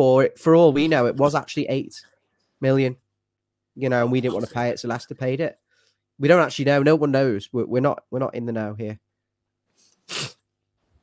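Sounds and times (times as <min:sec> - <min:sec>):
person sneezing: 0:10.0 - 0:10.5.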